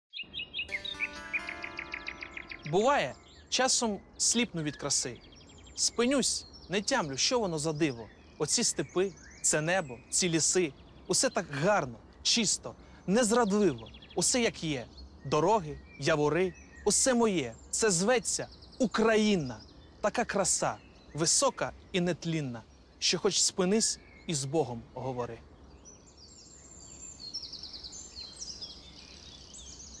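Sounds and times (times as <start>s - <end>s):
birds chirping: 0.1s - 30.0s
songbirds trilling: 0.1s - 30.0s
sustained musical chord: 0.7s - 4.2s.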